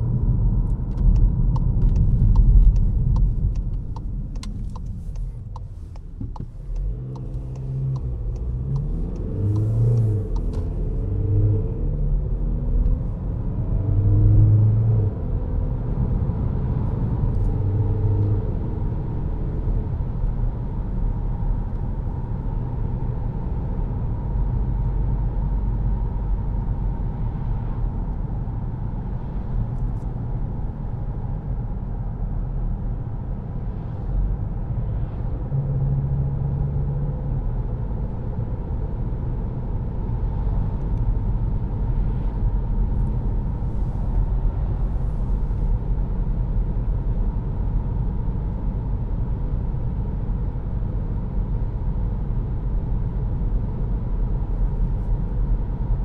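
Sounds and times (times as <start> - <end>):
car engine and road rumble: 0.0 - 56.0.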